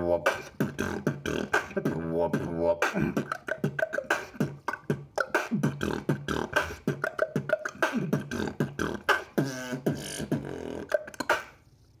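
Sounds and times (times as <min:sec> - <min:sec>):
wavering vocal tone: 0:00.0 - 0:11.5
beatboxing: 0:00.0 - 0:11.8.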